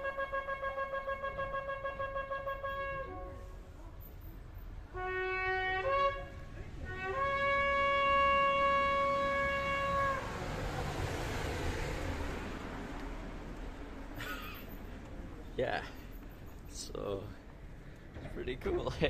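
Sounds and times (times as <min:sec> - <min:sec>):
ram's horn blasts: 0:00.0 - 0:03.7, 0:04.9 - 0:10.4.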